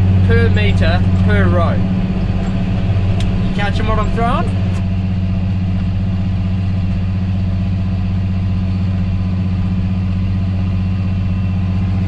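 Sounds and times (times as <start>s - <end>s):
tractor engine drone: 0.0s - 12.0s.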